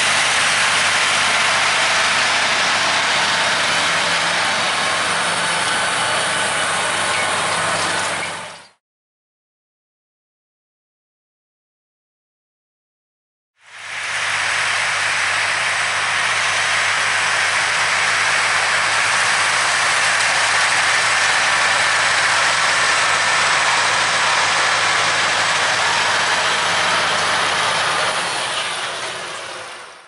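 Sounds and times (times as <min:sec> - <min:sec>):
cultivator rushing through ground: 0:00.0 - 0:08.7, 0:13.8 - 0:29.8
tractor diesel engine under load: 0:00.0 - 0:08.8, 0:13.7 - 0:30.0.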